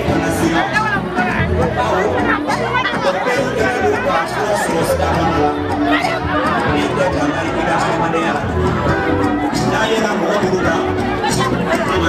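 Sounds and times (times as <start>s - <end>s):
backing music with bass line: 0.0s - 12.0s
crowd chattering: 0.0s - 12.0s
man speaking over loudspeakers: 0.0s - 12.0s.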